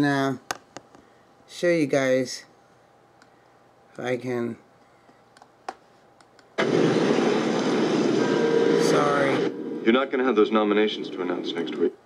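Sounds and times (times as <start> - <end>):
loud dense film soundtrack: 6.6 - 11.7.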